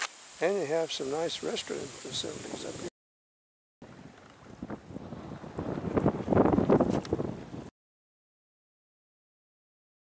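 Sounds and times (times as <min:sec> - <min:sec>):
wind buffeting microphone: 0:01.4 - 0:02.9, 0:03.8 - 0:07.7.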